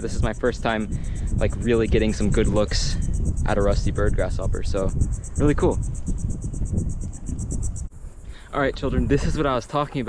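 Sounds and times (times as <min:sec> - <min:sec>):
pulsing insect trill: 0:00.0 - 0:10.0
wind rumbling on microphone: 0:00.0 - 0:10.0.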